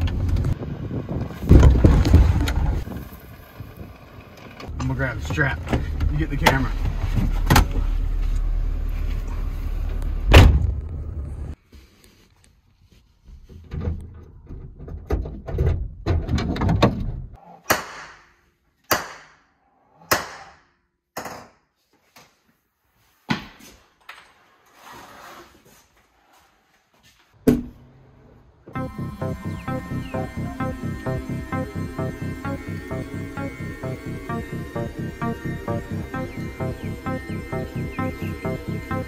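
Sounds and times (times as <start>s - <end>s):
car door slamming shut: 10.3s - 10.8s
shuffling sounds: 11.6s - 13.6s.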